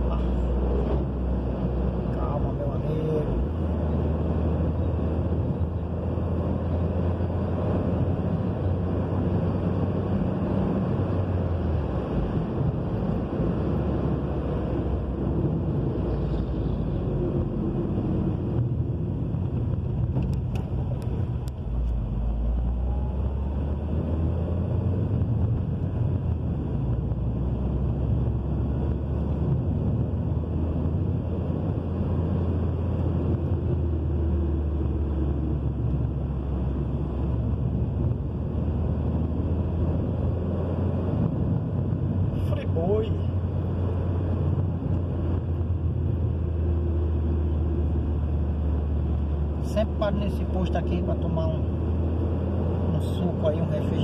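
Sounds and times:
car engine droning: 0:00.0 - 0:54.0
tyres rumbling on asphalt: 0:00.0 - 0:54.0.

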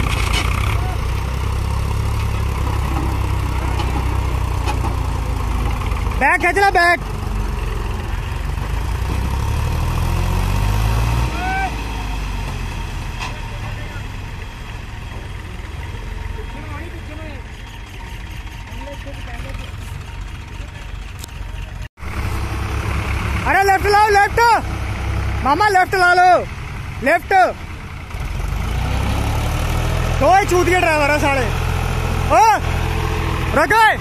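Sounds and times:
diesel tractor engine labouring: 0:00.0 - 0:34.0
person shouting: 0:11.3 - 0:11.8.

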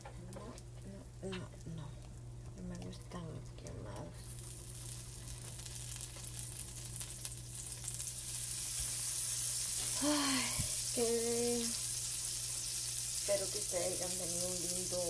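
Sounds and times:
short hum-like tones: 0:00.0 - 0:15.0
batter sizzling in a frying pan: 0:04.2 - 0:15.0.

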